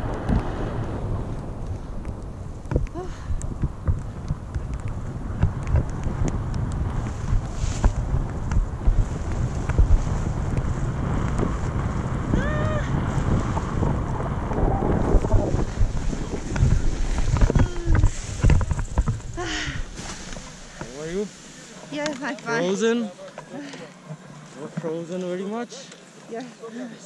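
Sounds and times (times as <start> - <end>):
wind buffeting microphone: 0.0 - 21.3
person crying out: 12.3 - 13.0.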